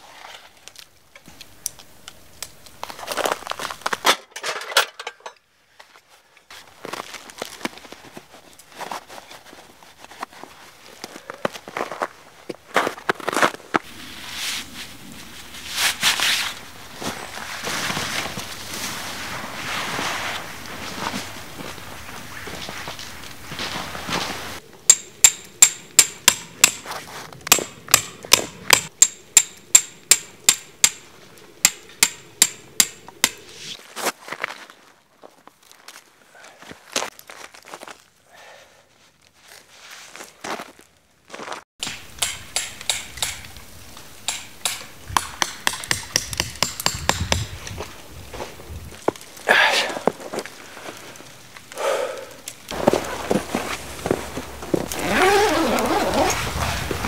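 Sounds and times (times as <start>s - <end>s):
tent fabric rustling: 5.9s - 24.6s, 38.9s - 41.7s, 52.7s - 57.0s
hammer striking metal tent peg: 24.9s - 26.8s, 27.5s - 31.0s, 31.6s - 33.5s, 41.8s - 43.4s, 44.3s - 47.4s.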